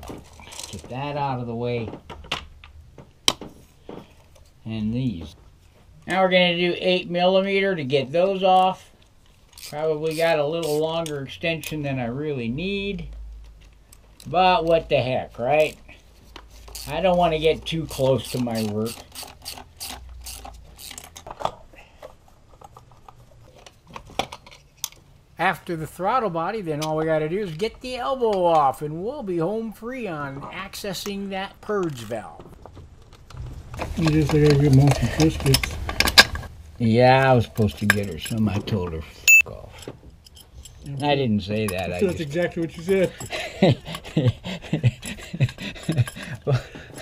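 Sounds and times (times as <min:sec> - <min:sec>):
clicks and knocks of car parts: 0:01.8 - 0:04.2, 0:21.0 - 0:25.1
tool and parts rattling: 0:08.6 - 0:11.8, 0:15.6 - 0:25.1, 0:31.9 - 0:36.6, 0:37.5 - 0:39.0, 0:39.8 - 0:47.0
socket ratchet clicking: 0:18.2 - 0:21.2.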